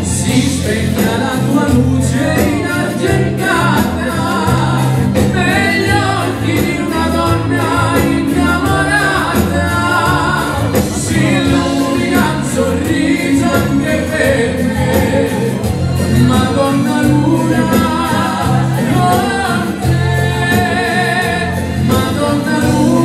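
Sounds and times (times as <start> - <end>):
singers singing together: 0.0 - 23.0.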